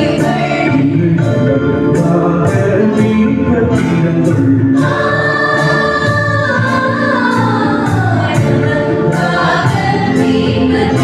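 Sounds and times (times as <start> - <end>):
choir singing a hymn: 0.0 - 1.4, 4.3 - 11.0
male lead vocal: 0.0 - 5.2
electronic keyboard: 0.0 - 11.0.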